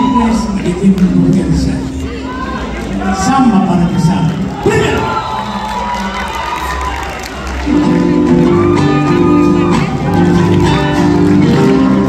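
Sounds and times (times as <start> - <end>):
audience cheering and calling out: 0.0 - 12.0.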